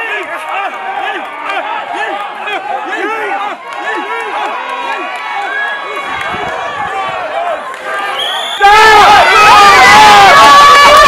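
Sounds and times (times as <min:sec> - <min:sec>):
crowd shouting and cheering: 0:00.0 - 0:11.0.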